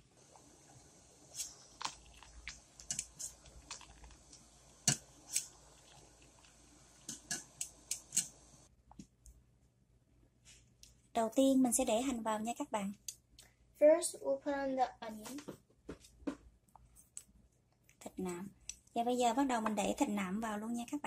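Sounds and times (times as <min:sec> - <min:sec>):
faint steady background noise: 0:00.0 - 0:21.0.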